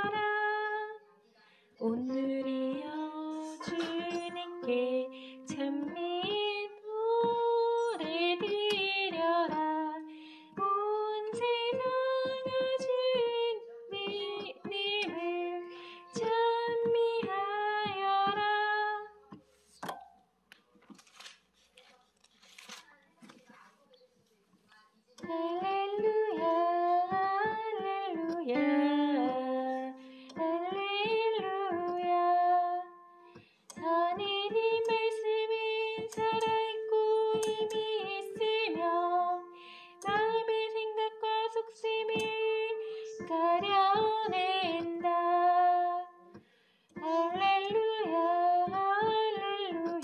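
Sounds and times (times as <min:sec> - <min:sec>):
person singing a hymn: 0:01.8 - 0:19.2, 0:25.2 - 0:33.0, 0:33.7 - 0:46.4, 0:47.0 - 0:50.0.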